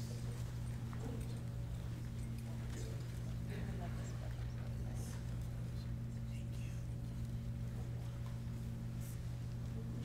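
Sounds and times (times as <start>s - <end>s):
faint murmured voices: 0.0s - 10.0s
low electrical hum: 0.0s - 10.0s.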